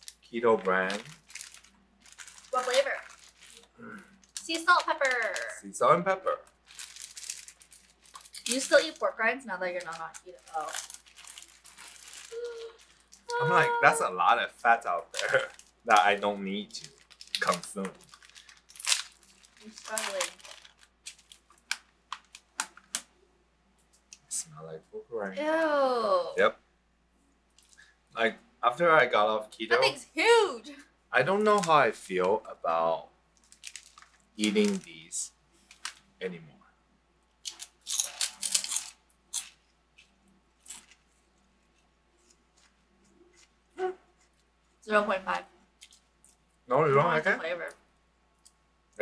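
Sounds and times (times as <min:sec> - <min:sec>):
plastic bag ripping open: 0:00.0 - 0:05.5, 0:06.6 - 0:09.1, 0:09.7 - 0:13.7, 0:15.2 - 0:23.0, 0:31.4 - 0:31.9, 0:33.4 - 0:35.0, 0:37.4 - 0:39.6
plastic bag crinkling: 0:00.0 - 0:05.6, 0:06.5 - 0:13.6, 0:15.1 - 0:23.0, 0:31.3 - 0:31.9, 0:33.4 - 0:35.0, 0:35.6 - 0:36.2, 0:37.4 - 0:41.2
crunchy food chewing: 0:37.4 - 0:44.5.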